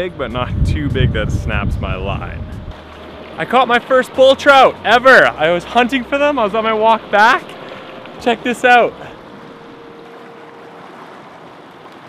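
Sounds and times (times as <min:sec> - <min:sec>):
river water rushing over rapids: 0:02.7 - 0:12.0.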